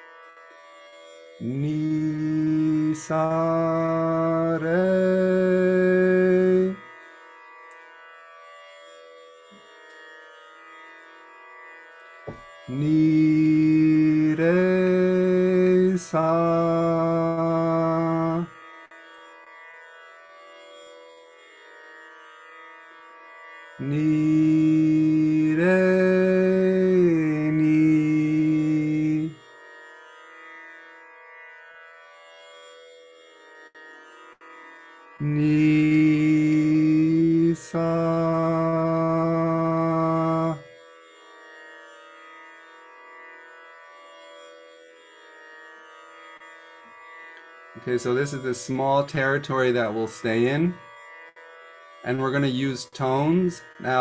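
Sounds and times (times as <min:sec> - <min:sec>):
man singing long held tones: 0:01.4 - 0:06.9, 0:12.7 - 0:18.6, 0:23.8 - 0:29.5, 0:35.2 - 0:40.7, 0:47.8 - 0:50.8, 0:52.0 - 0:54.0.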